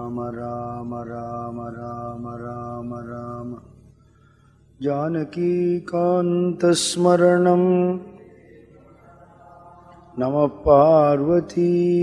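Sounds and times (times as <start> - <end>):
man chanting: 0.0 - 3.8, 4.8 - 12.0.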